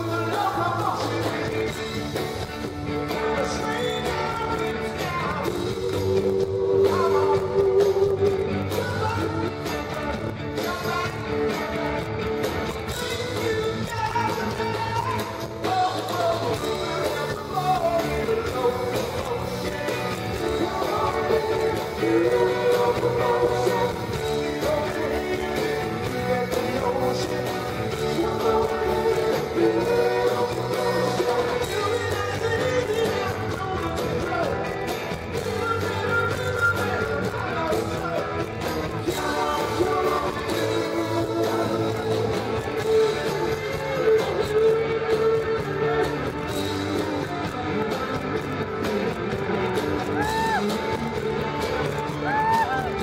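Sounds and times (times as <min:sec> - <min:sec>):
live rock band playing: 0:00.0 - 0:53.0.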